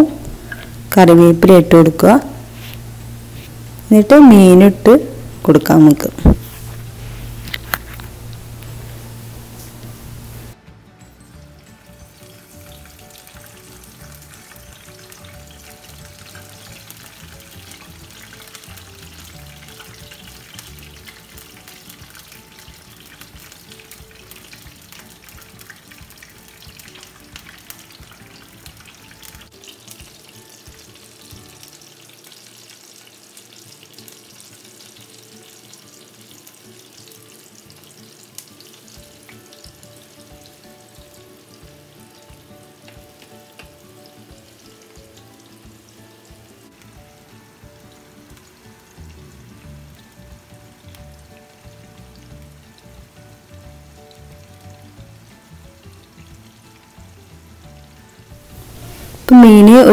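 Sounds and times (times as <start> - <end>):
fish sizzling in hot oil: 0.0 - 59.9.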